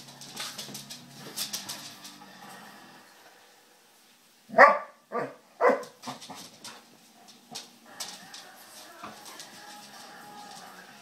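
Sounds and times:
dog barking: 4.5s - 6.0s.

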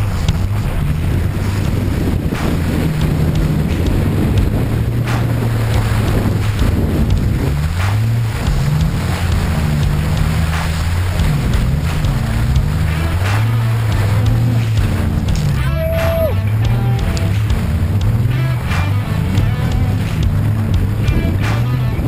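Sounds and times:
truck engine revving: 0.0s - 22.0s
wind noise on microphone: 0.0s - 22.0s.

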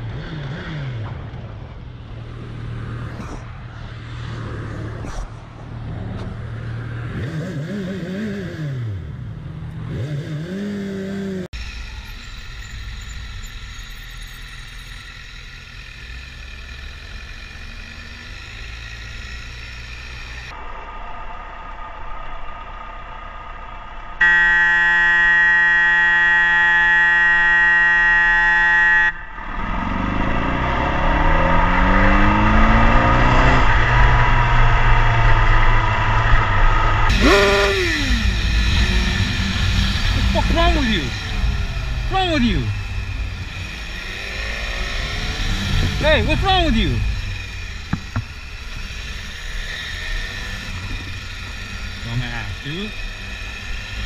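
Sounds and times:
motorcycle engine revving: 0.0s - 20.6s, 24.2s - 54.0s
traffic: 0.0s - 54.0s
loud steady tone: 11.6s - 20.7s, 24.2s - 29.6s, 36.8s - 54.0s.

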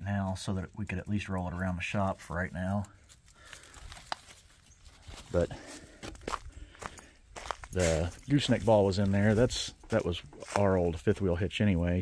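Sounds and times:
leaves rustling: 1.0s - 11.2s
footsteps on leafy dirt: 1.7s - 11.3s.

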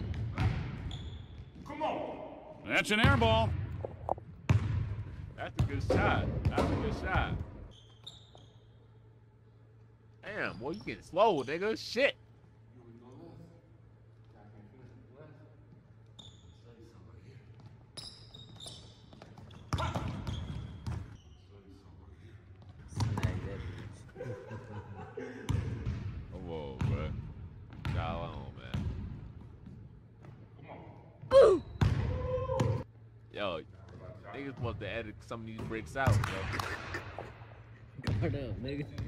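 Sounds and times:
men's voices: 1.7s - 3.6s, 33.4s - 37.4s
basketball bouncing on hardwood floor: 5.6s - 7.6s, 27.7s - 28.0s.

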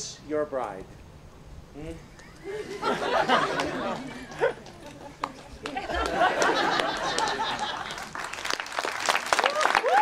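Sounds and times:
people laughing: 2.2s - 8.2s
crowd applause: 2.7s - 10.0s.

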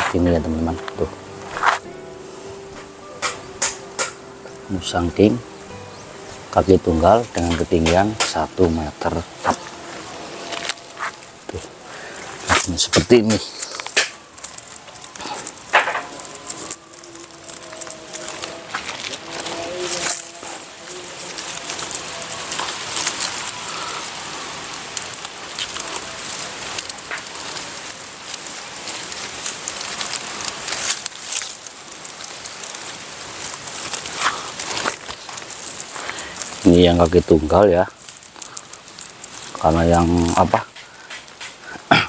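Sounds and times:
leaves and straw rustling: 0.0s - 42.0s.

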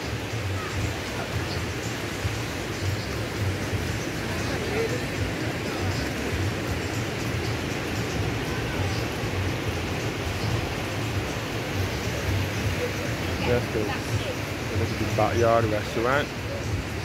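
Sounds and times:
waves breaking on beach: 0.0s - 17.0s.

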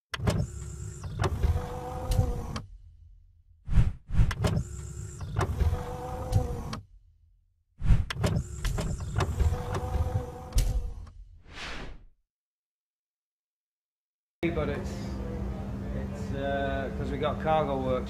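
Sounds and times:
mechanical sliding and whooshing: 3.6s - 6.8s, 7.8s - 12.1s.

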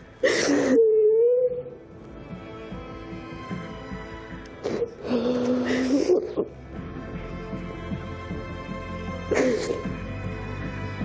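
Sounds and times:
soft background music: 0.0s - 11.0s
woman crying wail: 0.2s - 1.8s, 4.8s - 6.6s.

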